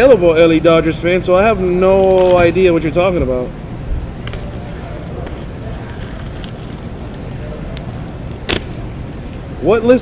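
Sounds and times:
low background rumble: 1.0 - 9.7
trading cards being handled: 1.6 - 2.5, 3.9 - 9.3.

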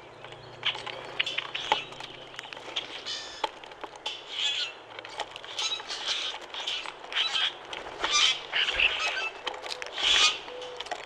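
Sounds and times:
birds giving raspy calls: 0.0 - 11.0.

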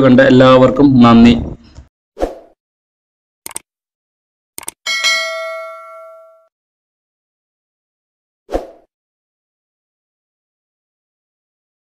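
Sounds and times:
bright notification bell ding: 4.9 - 6.5.

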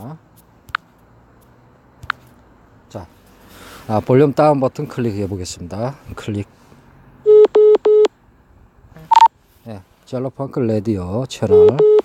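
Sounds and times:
buzzy beeps from phone app: 9.1 - 9.3.

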